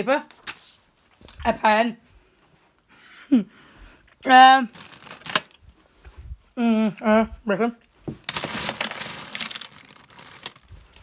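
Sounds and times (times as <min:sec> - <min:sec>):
pens rattling in a tin: 0:08.3 - 0:10.6.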